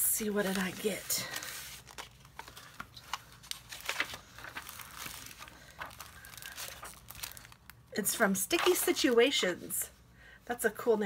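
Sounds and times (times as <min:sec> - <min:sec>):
plastic sleeve crinkling: 0:00.1 - 0:09.2
paper envelope rustling: 0:00.2 - 0:07.8.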